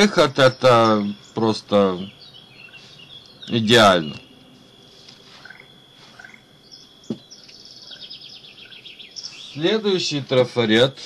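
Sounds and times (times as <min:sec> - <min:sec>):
high bird chirps: 0:00.0 - 0:09.9.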